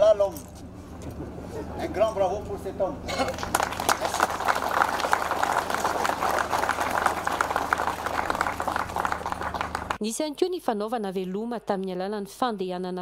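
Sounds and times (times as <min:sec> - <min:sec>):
crowd clapping: 0:03.2 - 0:10.0.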